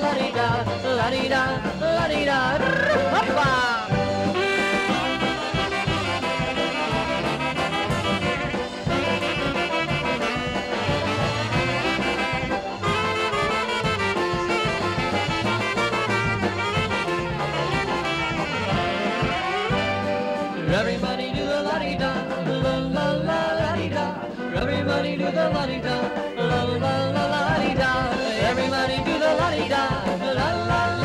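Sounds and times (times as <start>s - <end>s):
polka band playing: 0.0s - 31.0s.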